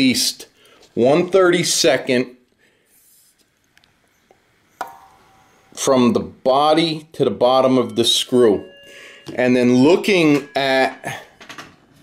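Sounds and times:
faint metallic ringing: 4.1s - 12.0s.

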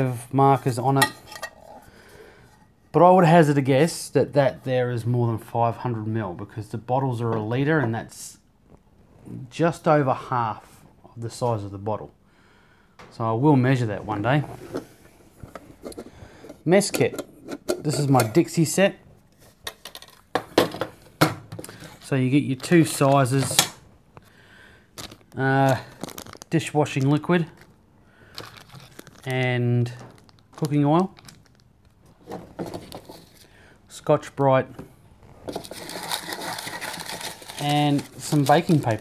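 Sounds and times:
metal cup rubbing and rustling: 0.5s - 1.9s, 14.4s - 18.5s, 35.5s - 39.0s
metal mess tins clinking: 0.6s - 1.9s, 16.9s - 18.5s.

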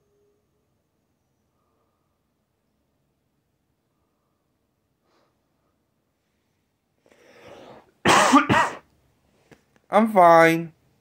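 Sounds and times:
breathy intake: 7.0s - 8.0s
person coughing harshly: 8.0s - 8.9s.

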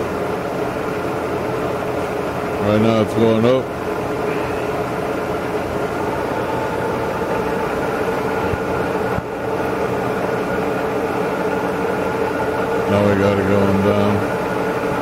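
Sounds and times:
milling machine humming and whining: 0.0s - 15.0s.

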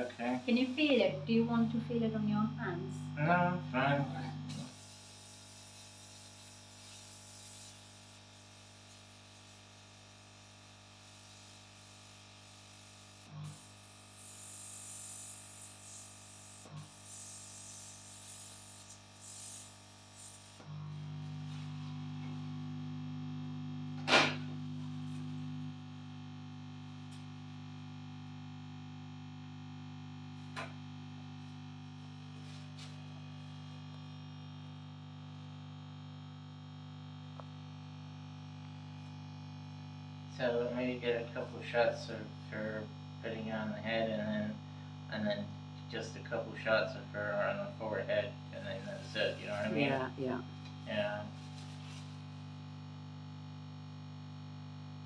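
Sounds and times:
low electrical hum: 0.0s - 55.0s
air blower hissing: 4.5s - 8.2s, 13.0s - 20.7s.

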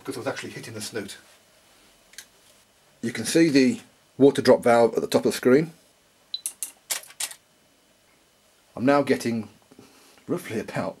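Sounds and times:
sharp mechanical clicks: 6.3s - 7.4s.

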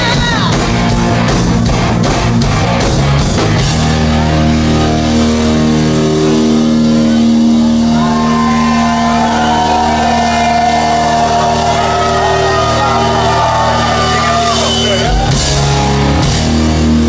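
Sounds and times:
rock band sustained chord: 0.0s - 17.0s.

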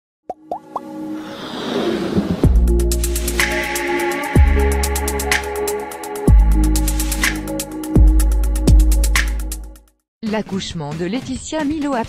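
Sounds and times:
rising plop sound effects: 0.3s - 1.0s
whoosh: 1.2s - 2.8s
electronic music: 2.4s - 9.8s.

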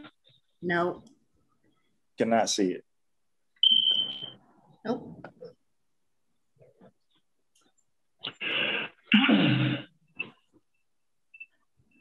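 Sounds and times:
high-pitched electronic beep: 3.6s - 4.4s.

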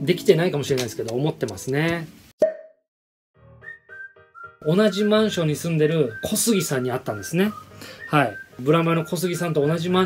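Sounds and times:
pop sound effect: 1.5s - 2.8s.

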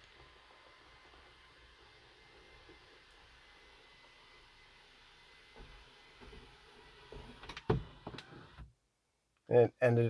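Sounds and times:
faint motor whine: 0.0s - 8.7s.

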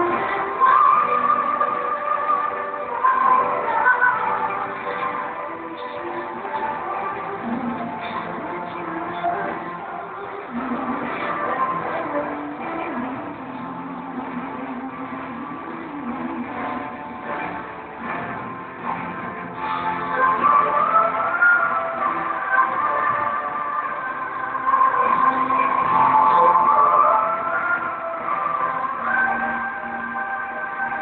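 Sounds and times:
amplified pop song: 0.0s - 31.0s.

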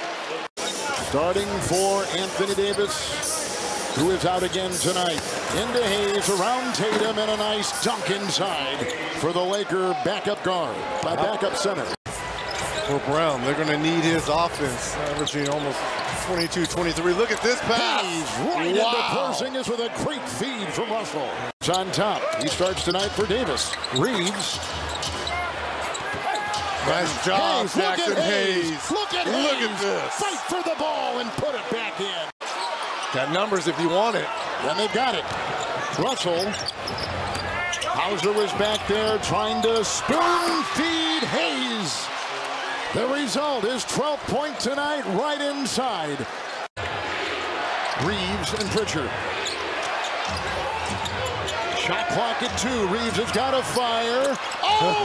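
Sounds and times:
arena crowd noise: 0.0s - 55.0s
shoe squeaks on court: 22.3s - 26.8s, 35.5s - 39.8s.

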